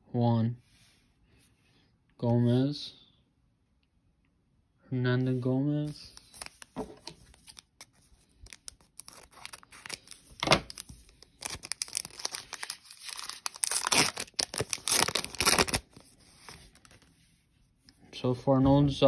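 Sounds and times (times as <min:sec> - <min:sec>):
foil wrapper crinkling: 0:06.0 - 0:17.0
foil wrapper tearing: 0:06.2 - 0:16.0.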